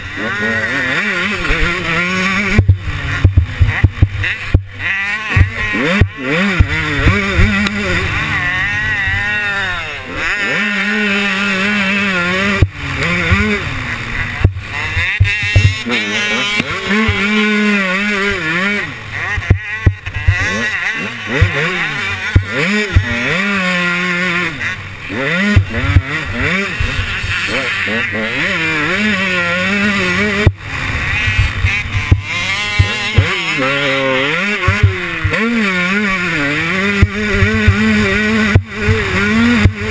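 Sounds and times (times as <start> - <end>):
motocross engine revving: 0.0 - 39.9
bike knocking over bumps: 2.5 - 4.8, 5.4 - 7.6, 14.4 - 15.9, 19.4 - 20.6, 32.0 - 33.4.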